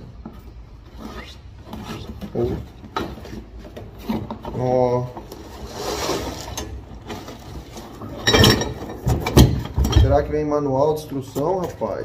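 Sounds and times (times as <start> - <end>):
box cutter scraping through cardboard: 5.4 - 6.6.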